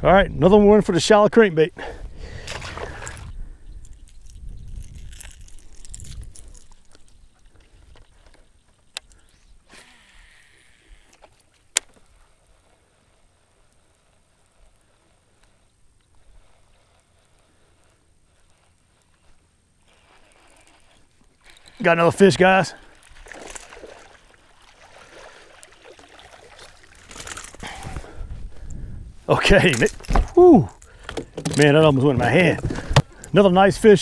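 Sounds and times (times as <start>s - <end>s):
water lapping against boat: 2.2s - 3.3s, 22.4s - 28.1s
fishing reel clicking: 9.0s - 11.9s, 16.4s - 23.7s
fishing line whirring off spool: 9.2s - 27.7s.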